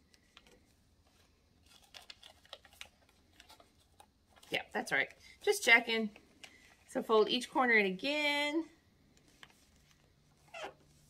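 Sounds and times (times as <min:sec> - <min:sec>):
paper crinkling: 0:00.1 - 0:04.8.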